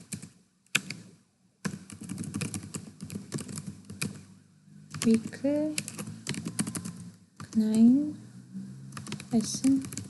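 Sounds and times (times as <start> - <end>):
computer keyboard typing: 0.0 - 1.0, 1.6 - 4.2, 4.9 - 7.8, 9.0 - 10.0.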